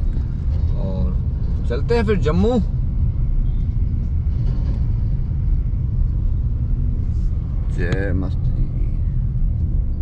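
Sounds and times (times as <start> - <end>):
car engine rumble: 0.0 - 10.0.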